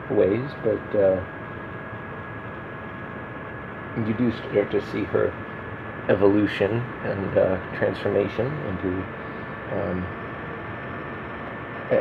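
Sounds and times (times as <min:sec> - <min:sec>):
man speaking: 0:00.0 - 0:01.2, 0:04.0 - 0:05.4, 0:06.1 - 0:09.1, 0:09.7 - 0:10.1
faint hum: 0:00.0 - 0:12.0
room noise hiss: 0:00.0 - 0:12.0.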